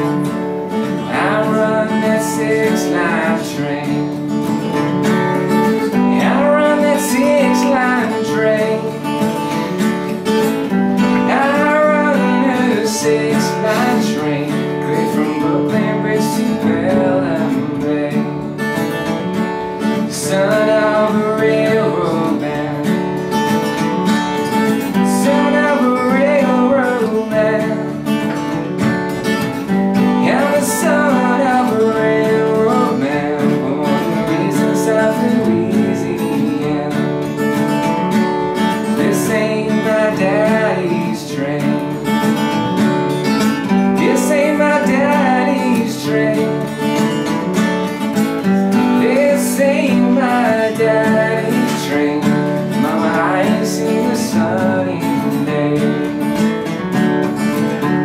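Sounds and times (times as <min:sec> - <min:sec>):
man singing: 0:00.0 - 0:38.0, 0:38.6 - 0:56.8
acoustic guitar strumming: 0:00.0 - 0:58.0.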